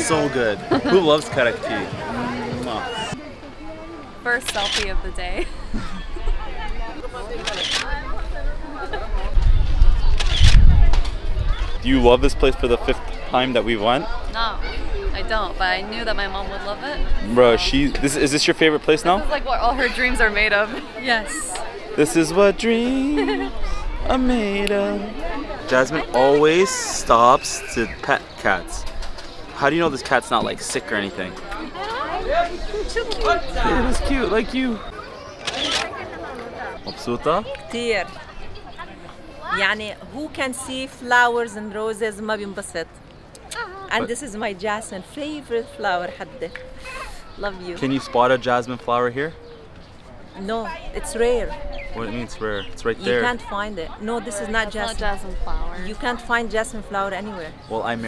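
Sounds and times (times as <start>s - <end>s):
faint voices: 0.0s - 58.0s
phone camera shutter: 35.4s - 35.9s.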